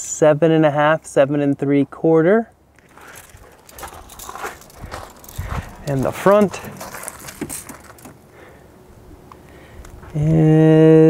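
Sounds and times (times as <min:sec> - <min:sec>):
footsteps on gravel: 0:02.7 - 0:08.3.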